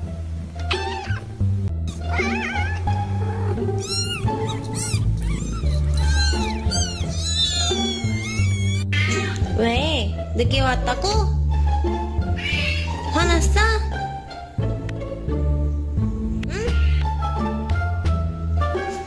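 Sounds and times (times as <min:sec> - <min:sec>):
background music with bass line: 0:00.0 - 0:19.0
cat meowing: 0:00.7 - 0:03.0, 0:03.7 - 0:09.4, 0:12.3 - 0:13.1, 0:16.5 - 0:17.2.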